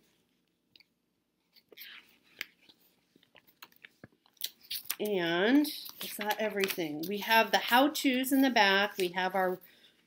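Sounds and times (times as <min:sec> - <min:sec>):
magazine pages turning: 0:01.6 - 0:07.4, 0:08.4 - 0:09.3.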